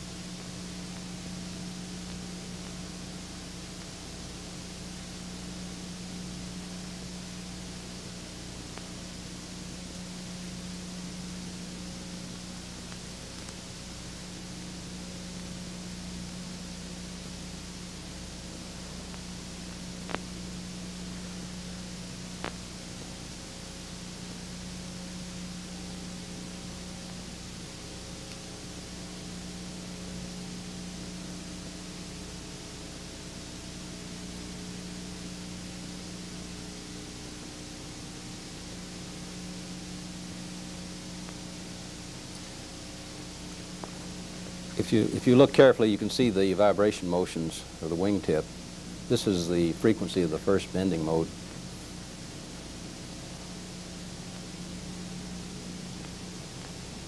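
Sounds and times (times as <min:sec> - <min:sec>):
faint steady tones: 0:00.0 - 0:57.0
low hum: 0:00.0 - 0:57.0
steady hiss: 0:00.0 - 0:57.0.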